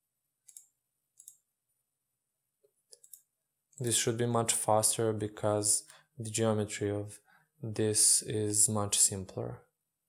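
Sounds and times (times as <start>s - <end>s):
computer mouse clicks: 0.4s - 1.4s, 2.9s - 3.3s.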